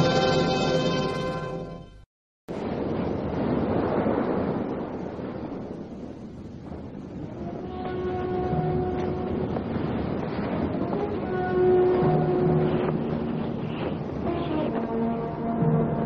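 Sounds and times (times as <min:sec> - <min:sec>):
surf roaring: 0:02.5 - 0:16.0
wind roaring: 0:02.5 - 0:16.0
long held musical notes: 0:07.3 - 0:16.0.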